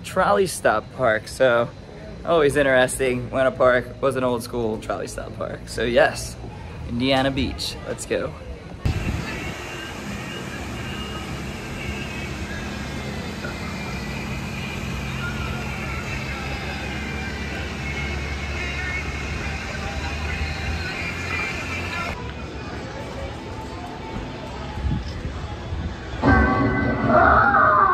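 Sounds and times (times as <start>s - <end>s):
low mechanical hum: 0.0s - 27.9s.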